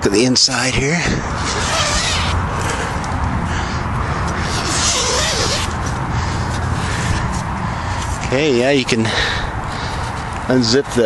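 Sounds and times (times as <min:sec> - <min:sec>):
steady low rumble: 0:00.6 - 0:10.6
tent fabric rustling: 0:01.4 - 0:03.0, 0:04.4 - 0:06.0.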